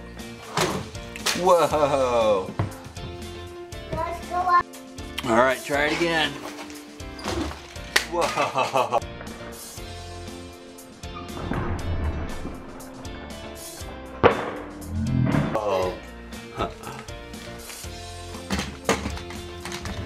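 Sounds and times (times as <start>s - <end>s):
background music with held notes: 0.0s - 20.0s.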